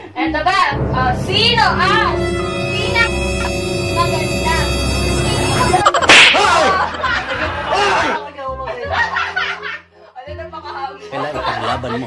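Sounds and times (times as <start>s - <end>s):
high wavering sliding tones: 1.3s - 6.2s
whip crack: 6.1s - 6.7s.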